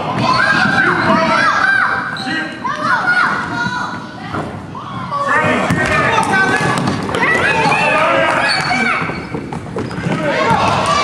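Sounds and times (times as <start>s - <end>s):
sneakers squeaking: 0.1s - 3.7s, 4.3s - 10.8s
ball bouncing: 5.4s - 7.8s
children shouting: 7.1s - 9.1s.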